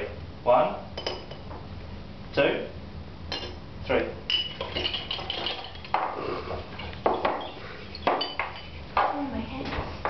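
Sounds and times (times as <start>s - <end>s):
glass clinking against glass: 1.0s - 1.5s, 3.3s - 3.6s, 4.3s - 8.8s.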